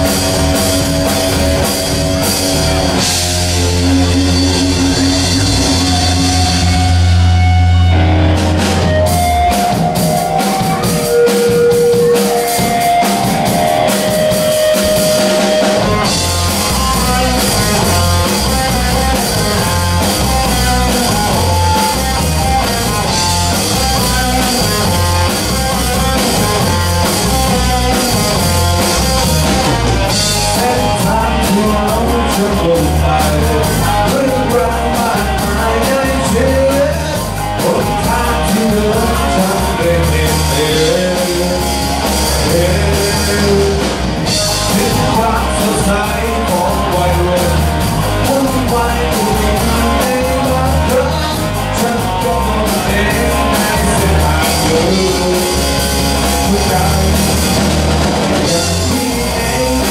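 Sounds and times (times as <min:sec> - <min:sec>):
live rock band playing: 0:00.0 - 0:59.9
sustained guitar notes: 0:00.0 - 0:59.9.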